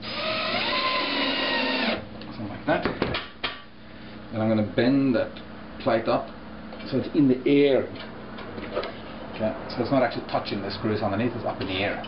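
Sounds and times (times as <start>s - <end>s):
electric screwdriver motor whine: 0.0s - 2.0s.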